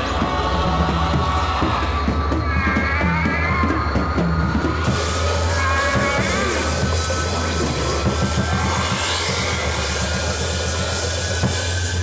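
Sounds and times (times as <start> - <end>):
hard rock music: 0.0 - 12.0.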